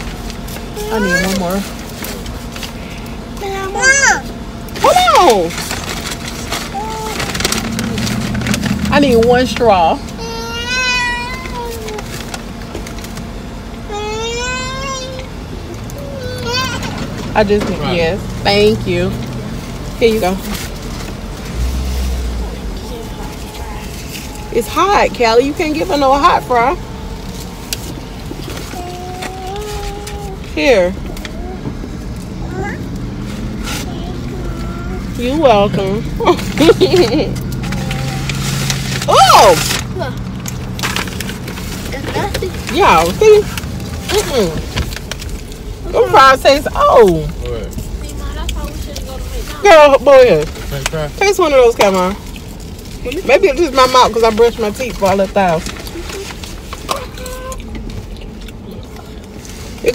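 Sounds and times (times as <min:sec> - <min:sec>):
paper bag rustling: 0:00.0 - 0:03.9, 0:04.8 - 0:13.4, 0:19.4 - 0:31.6, 0:32.5 - 0:58.5
car idling from inside: 0:00.0 - 0:59.7
child whining: 0:00.7 - 0:01.7, 0:03.3 - 0:04.3, 0:06.6 - 0:07.5, 0:10.1 - 0:12.2, 0:13.8 - 0:17.2, 0:22.7 - 0:24.9, 0:28.5 - 0:33.0, 0:33.8 - 0:35.2, 0:56.0 - 0:57.8
woman laughing: 0:36.2 - 0:37.4.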